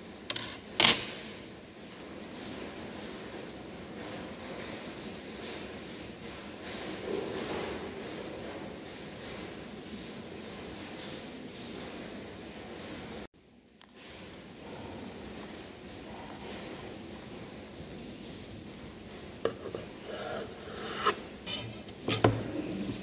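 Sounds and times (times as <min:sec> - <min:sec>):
steady background noise: 0:00.0 - 0:23.0.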